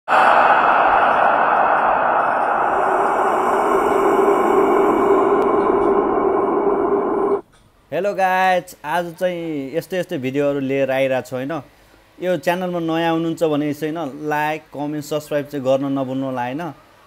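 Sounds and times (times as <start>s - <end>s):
loud steady rushing noise: 0.1s - 7.4s.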